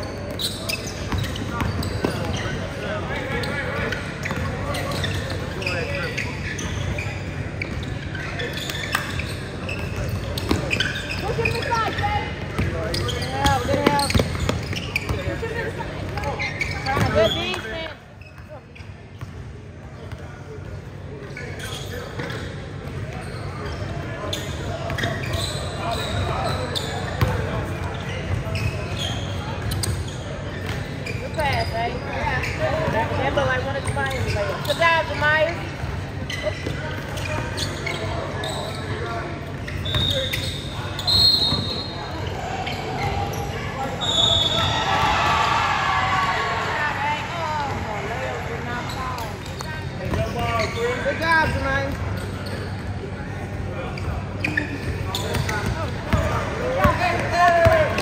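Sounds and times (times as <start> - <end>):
players and spectators calling out: 0.0 - 18.8, 21.4 - 58.0.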